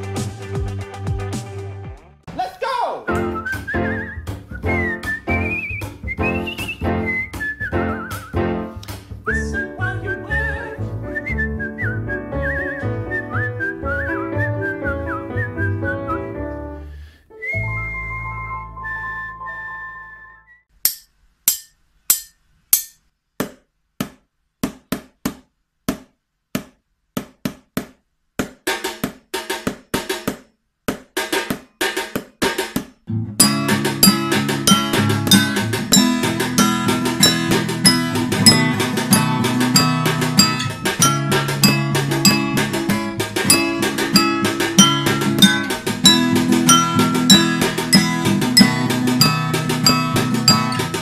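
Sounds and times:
rhythmic backing music: 0.0s - 2.5s, 3.1s - 9.3s, 33.3s - 51.0s
whistled melody: 3.1s - 20.7s, 33.4s - 51.0s
metal spoon tapping containers: 33.4s - 51.0s.

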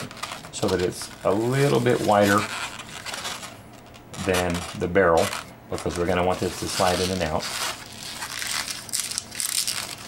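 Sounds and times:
hands rubbing a balloon: 0.0s - 10.0s.

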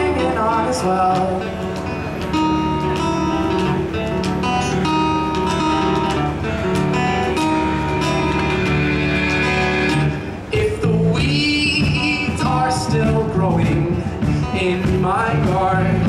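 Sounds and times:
strummed acoustic guitar: 0.0s - 16.0s
drum kit: 1.1s - 16.0s
accordion: 1.7s - 10.5s.

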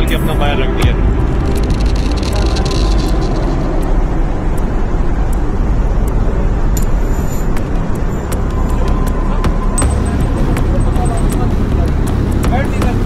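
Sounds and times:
airliner cabin rumbling: 0.0s - 13.0s.

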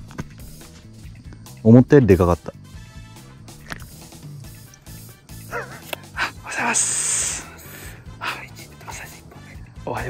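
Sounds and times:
background music: 0.0s - 10.0s
dog-like yelping cries: 5.5s - 5.9s.

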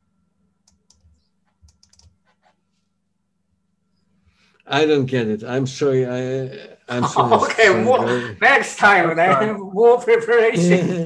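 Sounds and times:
faint keyboard typing: 0.6s - 2.8s.

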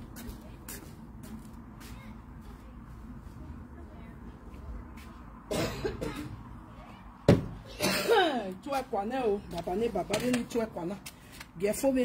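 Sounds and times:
person coughing: 5.5s - 6.4s, 7.7s - 8.4s.

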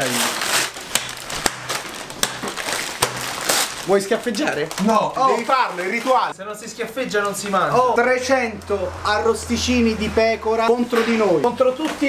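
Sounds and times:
paper and plastic wrapping rustling: 0.0s - 7.8s.

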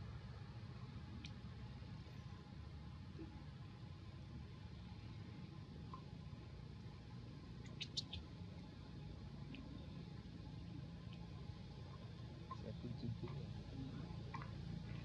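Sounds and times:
faint low rumble: 0.0s - 15.0s.

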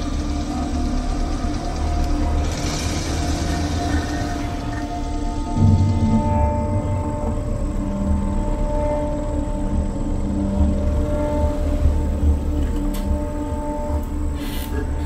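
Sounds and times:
background music with held tones: 0.0s - 15.0s.

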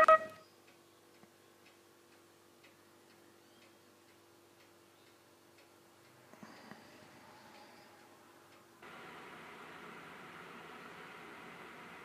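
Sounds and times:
faint steady hum: 0.0s - 12.0s
faint regular ticking: 0.4s - 8.9s.

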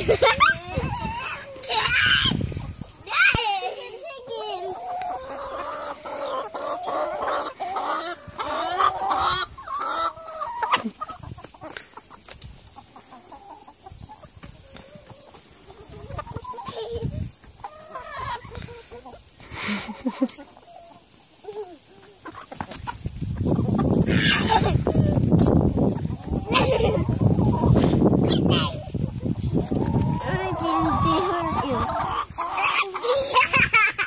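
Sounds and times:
hens clucking: 0.0s - 34.0s.

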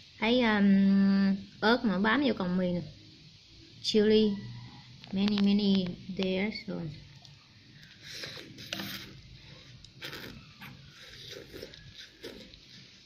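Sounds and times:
noodles being slurped: 7.8s - 13.0s.

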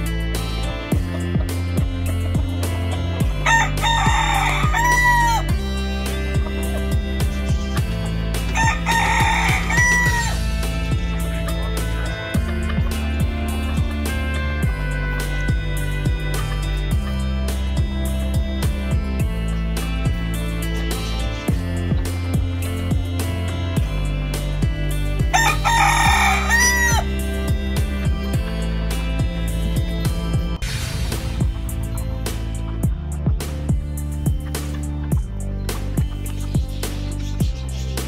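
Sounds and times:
music with steady beat: 0.0s - 38.0s
rooster crowing: 3.4s - 5.5s, 8.5s - 10.4s, 25.3s - 27.1s.

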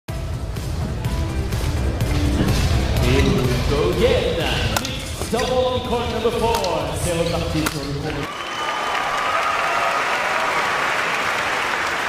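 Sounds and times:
badminton racket hitting shuttlecock: 4.7s - 5.6s.

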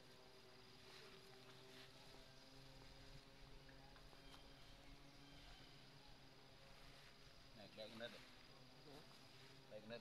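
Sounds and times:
high insect drone: 0.0s - 10.0s.

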